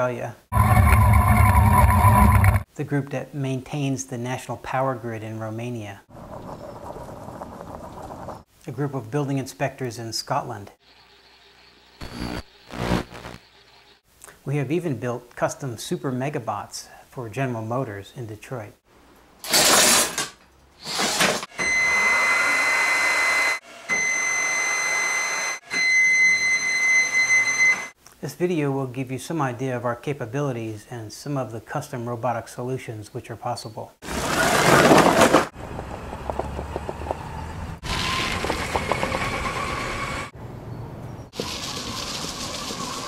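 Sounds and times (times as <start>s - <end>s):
robot motors whining: 0.6s - 2.6s, 11.0s - 13.4s
wheels rolling outdoors: 6.1s - 8.5s, 34.0s - 43.0s.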